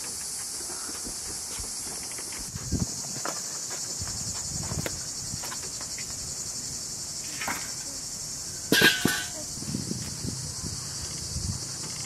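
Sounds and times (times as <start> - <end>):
crickets chirping: 0.0 - 12.0
metal grill pot clattering: 7.2 - 7.9, 8.7 - 9.5.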